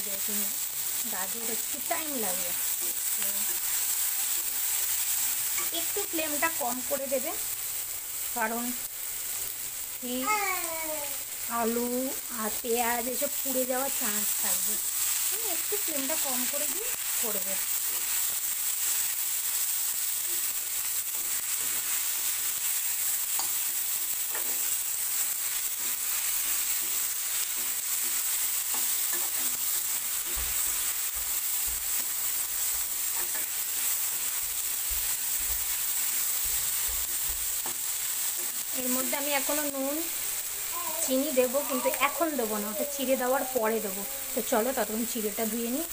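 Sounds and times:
vegetables sizzling in oil: 0.0 - 45.9.

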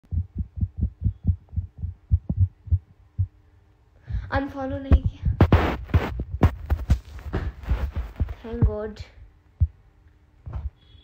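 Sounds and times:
faint steady hum: 0.0 - 11.0
rapid muffled thumps: 0.1 - 3.4, 4.1 - 9.0, 10.4 - 10.8.

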